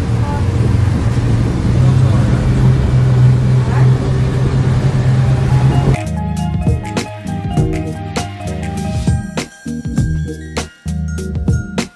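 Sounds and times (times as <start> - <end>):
water rushing along hull: 0.0 - 6.0
motorboat engine hum: 0.0 - 9.1.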